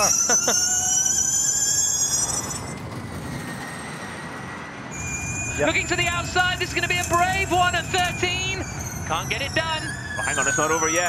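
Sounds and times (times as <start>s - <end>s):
track noise with faint tone: 5.5s - 11.0s.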